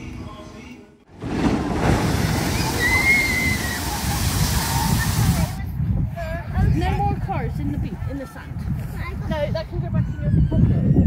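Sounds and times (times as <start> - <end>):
wind buffeting microphone: 1.1 - 11.0.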